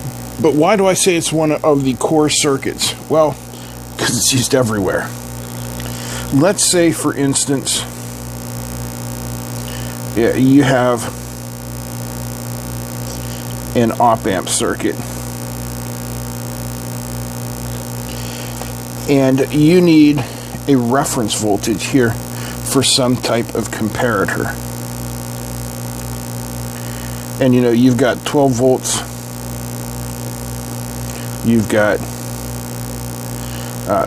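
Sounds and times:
electrical hum: 0:00.0 - 0:34.0.

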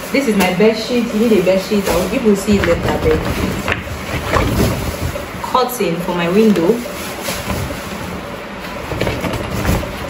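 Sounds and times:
plastic bag rustling: 0:00.0 - 0:10.0.

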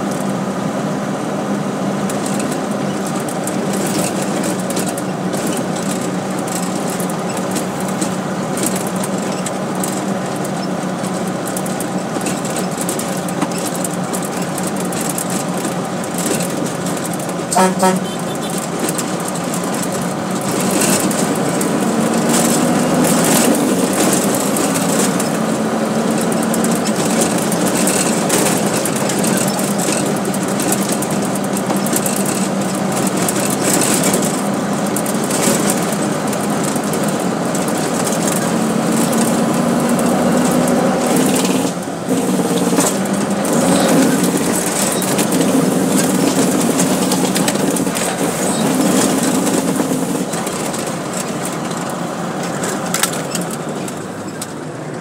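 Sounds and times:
rattle and road noise: 0:00.0 - 0:55.0
truck engine running under load: 0:00.0 - 0:55.0.

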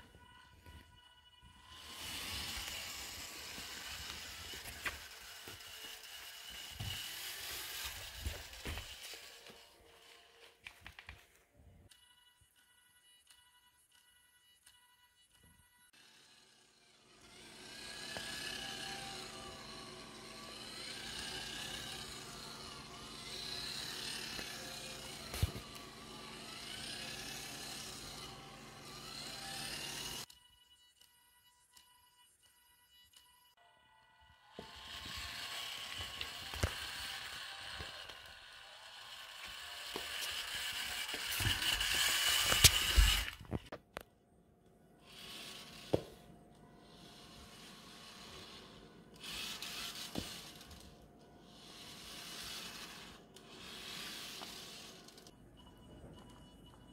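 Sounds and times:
small electric motors whining: 0:00.0 - 0:11.2, 0:11.9 - 0:43.7, 0:44.9 - 0:56.9.

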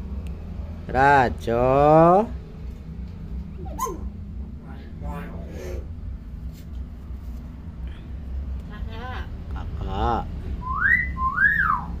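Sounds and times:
myna wolf-whistle: 0:03.7 - 0:04.1, 0:10.6 - 0:12.0.

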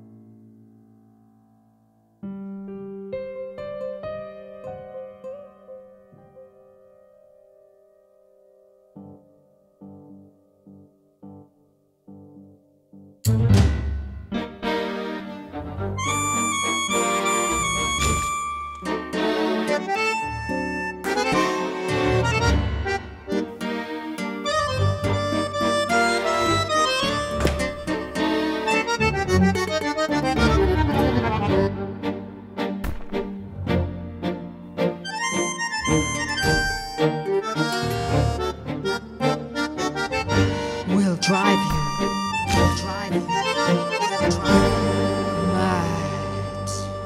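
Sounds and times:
accordions playing a tango: 0:14.4 - 0:47.0.

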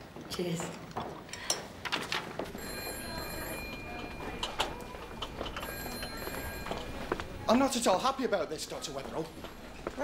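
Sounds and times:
low background bustle: 0:00.1 - 0:10.0
telephone ringing: 0:02.6 - 0:07.2.

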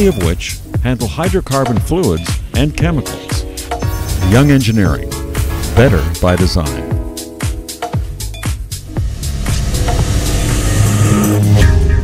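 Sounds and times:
electronic music: 0:00.0 - 0:12.0.

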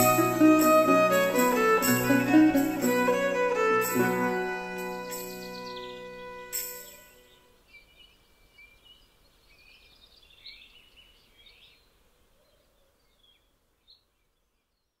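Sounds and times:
lute and bowed string note: 0:00.0 - 0:07.4
low hiss: 0:00.0 - 0:14.6
faint birds chirping: 0:04.8 - 0:15.0.

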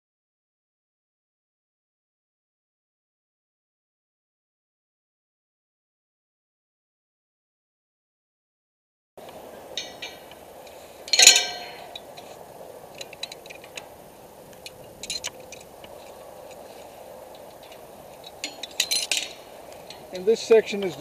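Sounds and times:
loud ringing metal clank: 0:09.6 - 0:10.4, 0:11.0 - 0:12.2, 0:17.6 - 0:20.2
metal hooks clinking on steel tower: 0:09.7 - 0:13.9, 0:14.5 - 0:16.6, 0:17.2 - 0:21.0.

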